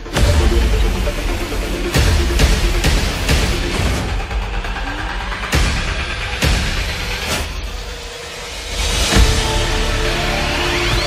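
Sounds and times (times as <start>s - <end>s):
soundtrack music: 0.0s - 11.0s.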